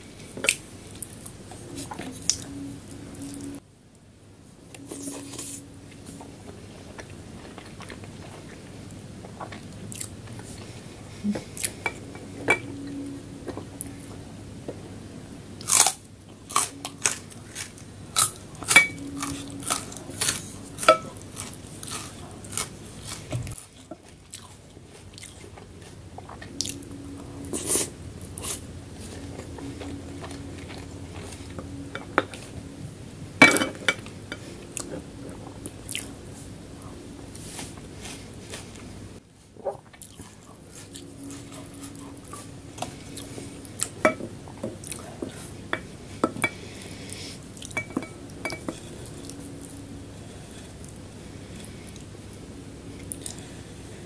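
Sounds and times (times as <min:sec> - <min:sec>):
faint low hum: 0:00.0 - 0:54.0
biting and chewing: 0:15.6 - 0:26.9.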